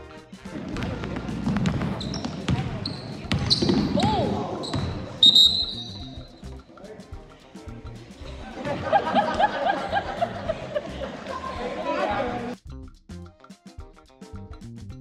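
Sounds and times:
sneakers squeaking on hardwood: 0.5s - 6.4s
basketball bouncing: 0.6s - 6.0s
voices of players and onlookers: 0.8s - 12.6s
upbeat music: 5.1s - 15.0s.

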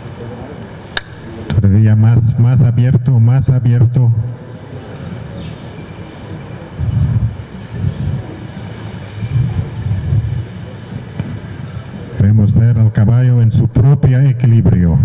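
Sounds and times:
faint muffled voices: 0.0s - 15.0s
wind on microphone: 6.6s - 12.2s.

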